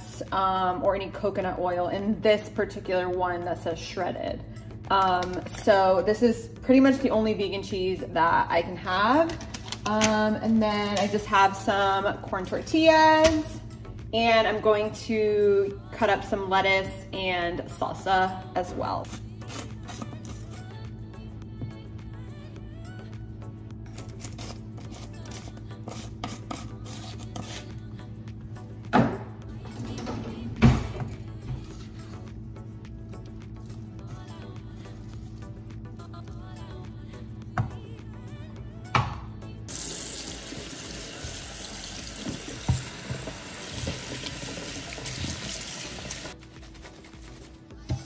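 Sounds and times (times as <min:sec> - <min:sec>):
quiet background music: 0:00.0 - 0:48.0.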